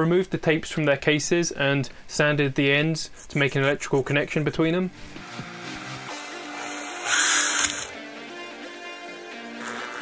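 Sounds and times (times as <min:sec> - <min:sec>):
background music: 0:04.9 - 0:10.0
power drill grinding through steel: 0:05.2 - 0:08.0.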